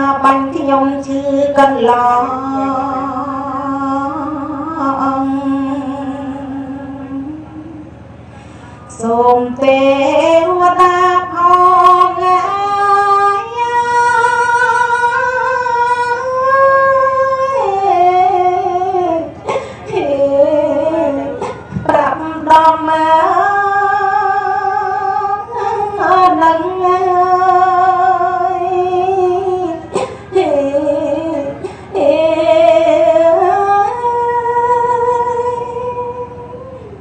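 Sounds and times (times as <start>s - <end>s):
woman chanting a lament: 0.0s - 7.8s, 8.9s - 37.0s.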